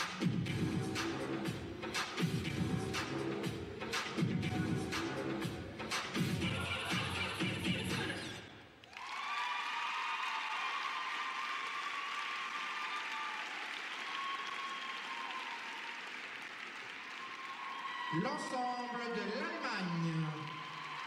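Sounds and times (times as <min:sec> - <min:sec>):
audience applauding: 0:08.8 - 0:21.0.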